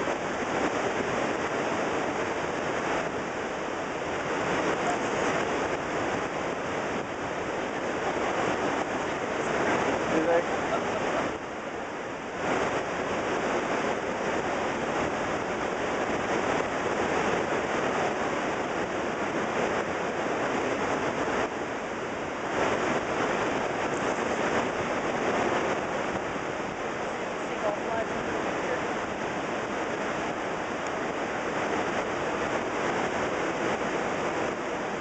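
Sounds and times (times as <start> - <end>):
waterfall rushing: 0.0 - 35.0.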